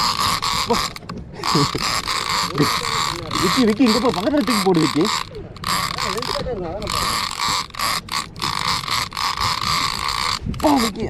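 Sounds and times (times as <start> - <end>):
fishing reel ratcheting: 0.0 - 11.0.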